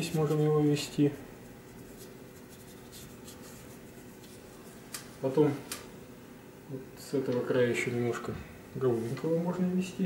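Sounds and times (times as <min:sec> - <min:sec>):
paintbrush scratching on cardboard: 0:01.4 - 0:04.4.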